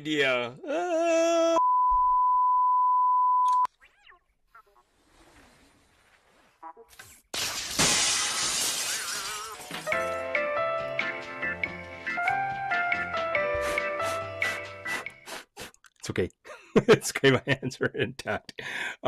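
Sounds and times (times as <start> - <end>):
man exclaiming: 0.4 - 1.6
loud crash of breaking glass: 7.4 - 10.0
light music: 9.9 - 15.2.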